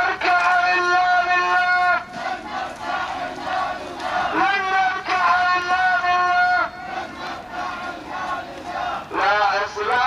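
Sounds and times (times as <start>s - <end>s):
crowd chanting: 0.0s - 10.0s.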